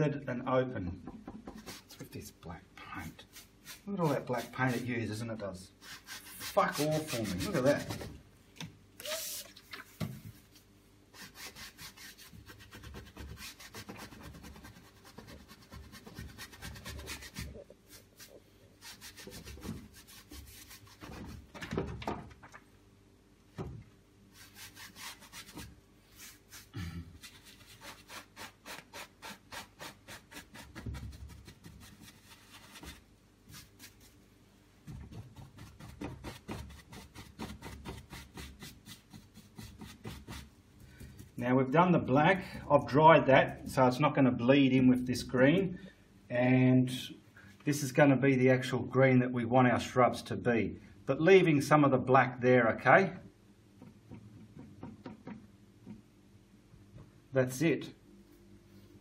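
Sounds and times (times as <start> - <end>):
brush scrubbing on canvas: 1.6 - 2.2, 3.0 - 4.9, 5.8 - 8.2, 9.0 - 21.5, 24.3 - 34.2, 35.1 - 40.5.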